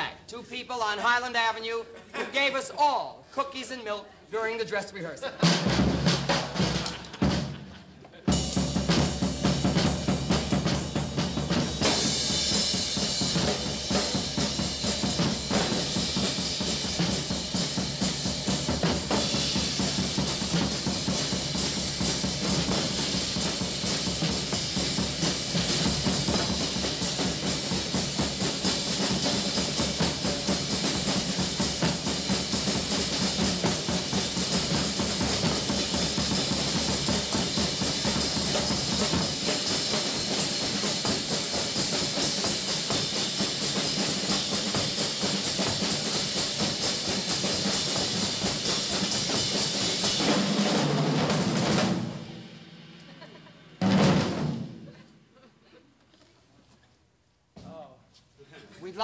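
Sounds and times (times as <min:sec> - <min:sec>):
drum kits playing: 0:00.0 - 0:55.1.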